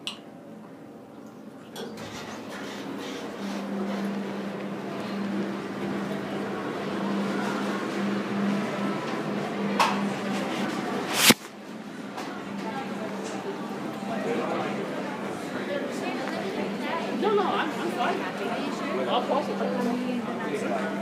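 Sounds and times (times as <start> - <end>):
background murmur: 0.6 - 21.0
elevator car humming: 1.8 - 15.4.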